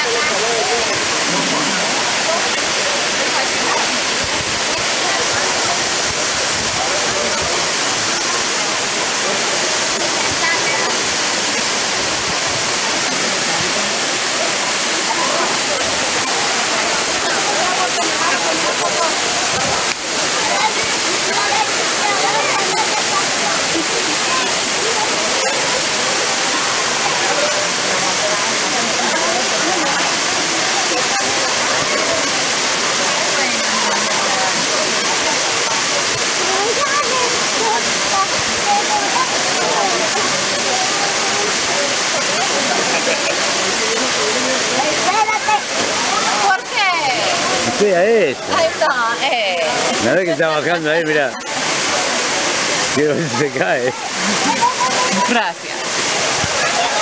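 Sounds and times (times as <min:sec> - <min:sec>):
waterfall pouring into a pool: 0:00.0 - 0:57.0.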